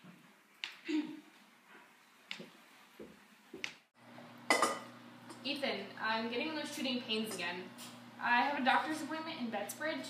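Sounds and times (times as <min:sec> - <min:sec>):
metal utensil clattering on pots: 0:04.5 - 0:04.9.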